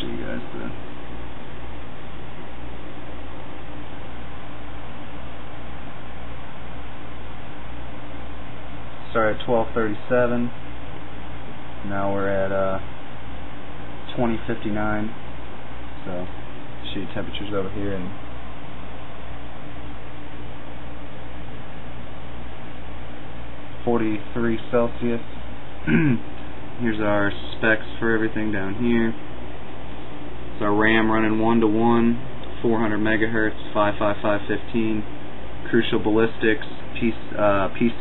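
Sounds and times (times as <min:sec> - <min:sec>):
computer fans hissing: 0:00.0 - 0:38.0.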